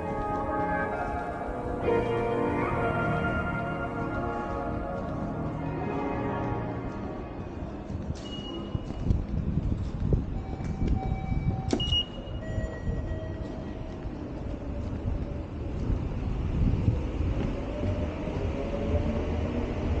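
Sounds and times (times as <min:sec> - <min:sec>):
train rumbling: 0:00.0 - 0:20.0.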